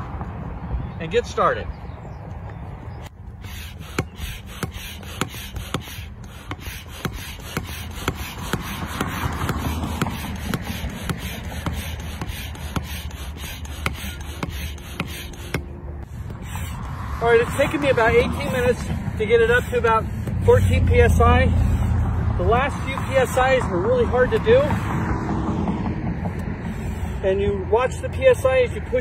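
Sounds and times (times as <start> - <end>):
hand pump strokes: 3.0 - 25.1, 26.2 - 27.4
rush of air: 3.4 - 20.9.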